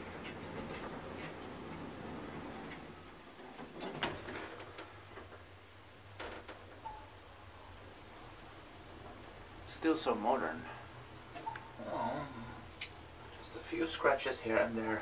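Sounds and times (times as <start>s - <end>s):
elevator humming: 0.0s - 5.1s.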